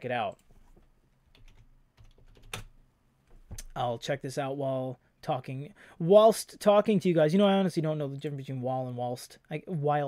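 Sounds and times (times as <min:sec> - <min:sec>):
computer keyboard clicking: 0:01.3 - 0:02.7.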